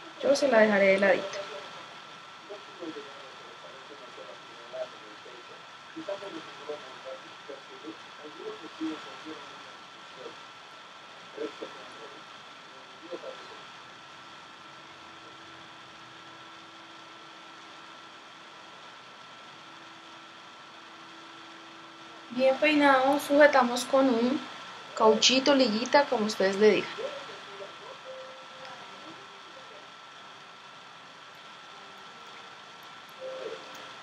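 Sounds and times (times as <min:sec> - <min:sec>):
faint voices murmuring: 0:00.0 - 0:14.4, 0:23.2 - 0:34.0
low steady hum: 0:00.0 - 0:34.0
thin high whine: 0:00.0 - 0:34.0.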